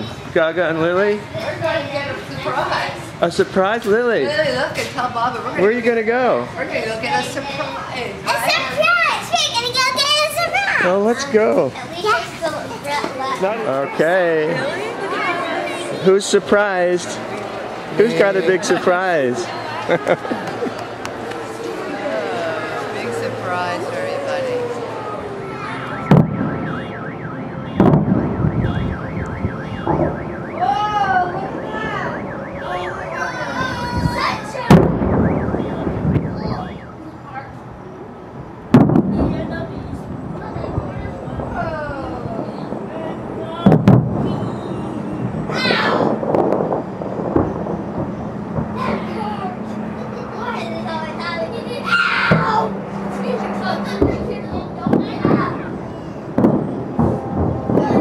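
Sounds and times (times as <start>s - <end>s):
voices: 0.0s - 58.0s
loud firework bursts: 24.8s - 36.7s, 38.7s - 39.5s, 42.7s - 50.5s, 53.9s - 58.0s
warbling alarm tone: 25.4s - 37.0s
distant firework shell bursting: 26.1s - 26.8s, 27.8s - 28.7s, 38.7s - 39.4s, 43.6s - 44.3s.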